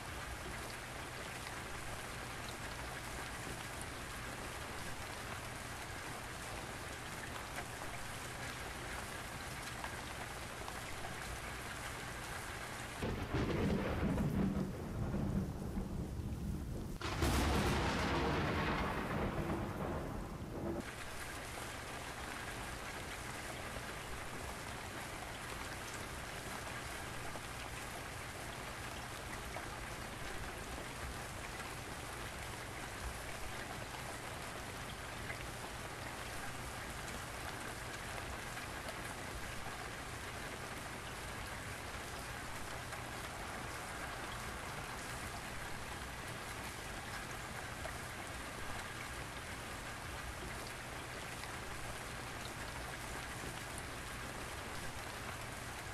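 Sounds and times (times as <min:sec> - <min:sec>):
rain hissing: 0:13.0 - 0:22.1.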